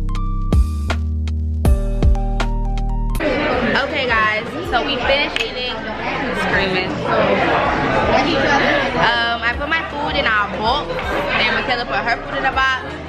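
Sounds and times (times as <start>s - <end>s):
restaurant chatter: 3.2s - 13.0s.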